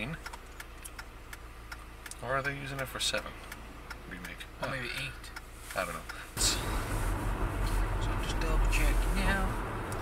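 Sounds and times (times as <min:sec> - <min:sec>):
faint regular ticking: 0:00.0 - 0:06.4
car engine idling: 0:00.0 - 0:10.0.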